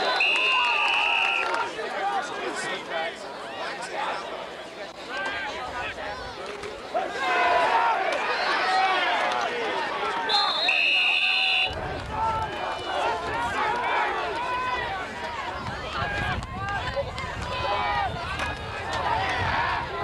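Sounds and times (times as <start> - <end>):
referee's whistle: 0.0 - 1.5, 10.2 - 11.8
shouting and chatter: 0.0 - 20.0.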